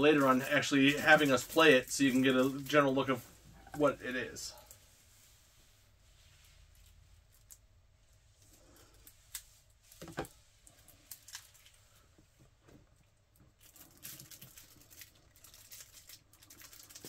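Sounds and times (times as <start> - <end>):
cellophane wrap crinkling: 0.0 - 3.2, 8.4 - 12.1, 13.3 - 17.0.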